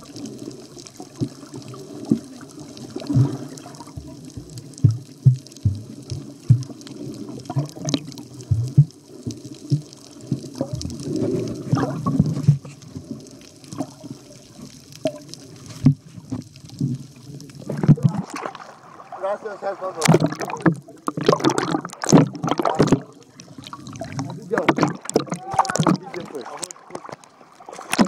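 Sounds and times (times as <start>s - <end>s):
water sloshing and gurgling: 0.0s - 28.0s.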